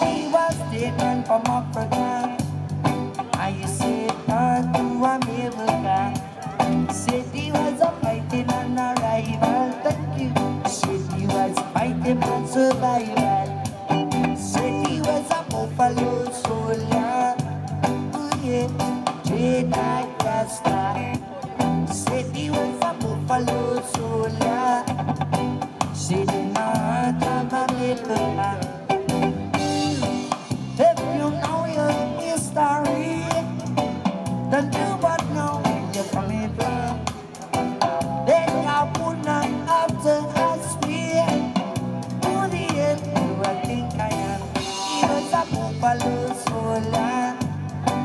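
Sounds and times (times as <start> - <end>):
guitar with steady beat: 0.0 - 48.0
man singing reggae: 0.0 - 48.0.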